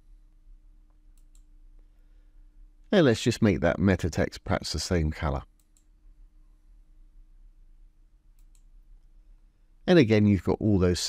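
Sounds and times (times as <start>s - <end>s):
faint background hum: 0.0s - 11.0s
computer mouse clicks: 0.9s - 1.5s, 5.6s - 5.9s, 8.3s - 9.1s
man speaking: 2.9s - 5.5s, 9.8s - 11.0s.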